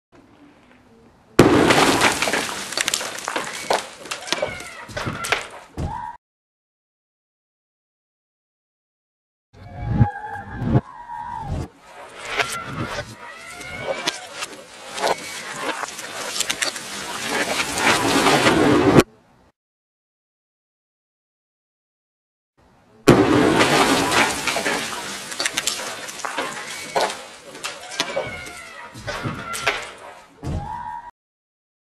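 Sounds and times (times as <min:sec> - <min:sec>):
loud explosive blast: 0:01.4 - 0:02.2, 0:23.1 - 0:24.8
debris scattering: 0:01.4 - 0:06.0, 0:11.8 - 0:19.1, 0:23.1 - 0:30.6.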